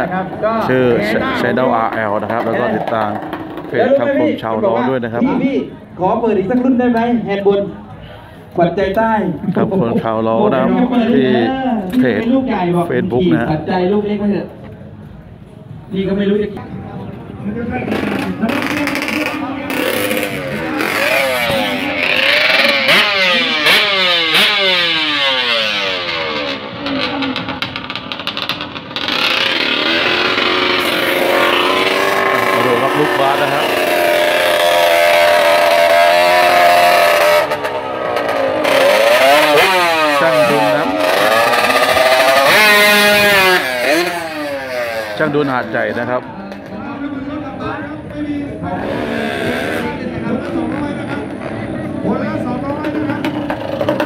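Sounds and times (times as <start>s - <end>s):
motorcycle engine revving: 0.0s - 5.6s, 17.5s - 54.0s.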